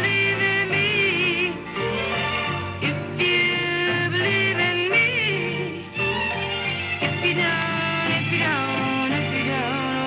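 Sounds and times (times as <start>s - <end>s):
woman singing soul song: 0.0s - 1.9s, 2.8s - 5.9s, 7.1s - 10.0s
soul band backing: 0.0s - 10.0s.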